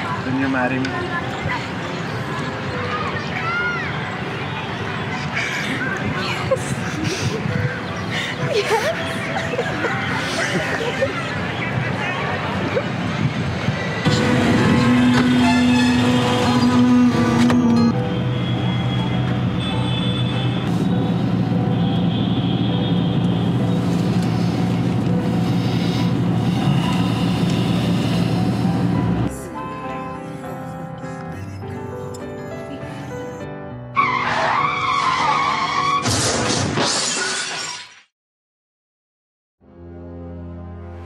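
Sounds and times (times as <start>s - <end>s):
road traffic: 0.0s - 33.3s, 34.0s - 36.8s
tyres screeching: 14.0s - 17.9s, 34.0s - 36.2s
music of long held low notes: 14.0s - 19.6s, 20.5s - 33.4s
vehicle crash: 34.2s - 38.0s.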